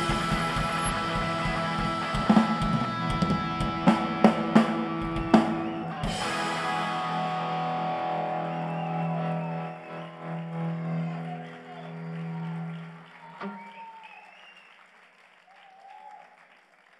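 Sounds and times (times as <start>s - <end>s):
rock band chord ringing out: 0.0s - 11.2s
audience cheers and whoops: 7.3s - 14.8s, 15.4s - 16.5s.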